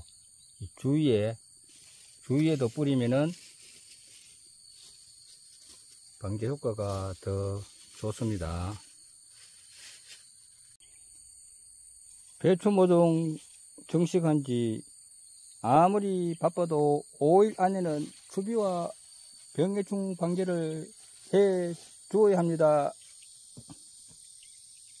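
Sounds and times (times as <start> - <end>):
insects chirring: 0.0 - 25.0
soft hiss: 1.7 - 11.0.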